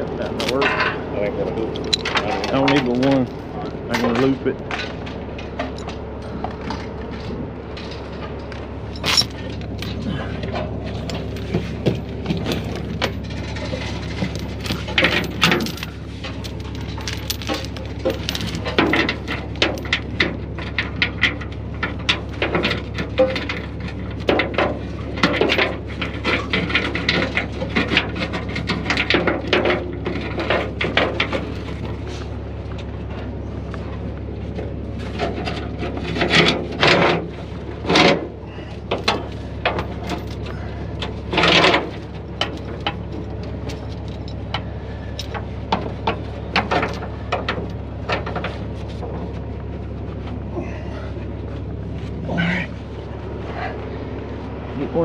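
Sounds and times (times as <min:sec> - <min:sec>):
low steady hum: 0:00.0 - 0:55.0
chain clanking: 0:00.2 - 0:32.2, 0:35.1 - 0:53.8
steel chain rattling: 0:08.8 - 0:31.9, 0:37.8 - 0:48.6.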